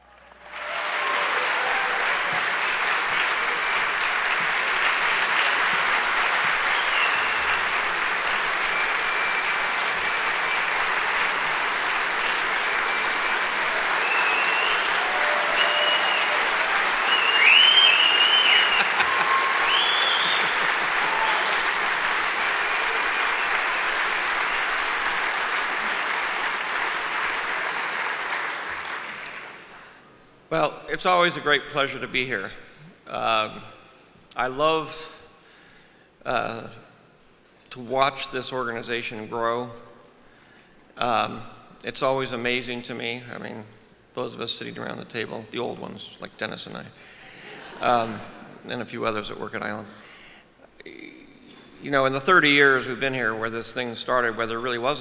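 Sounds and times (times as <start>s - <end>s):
large audience applauding: 0.0s - 30.0s.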